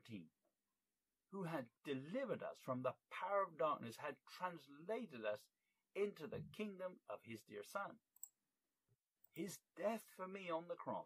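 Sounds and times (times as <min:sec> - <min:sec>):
man speaking: 0:00.0 - 0:00.3, 0:01.4 - 0:08.0, 0:09.4 - 0:11.0.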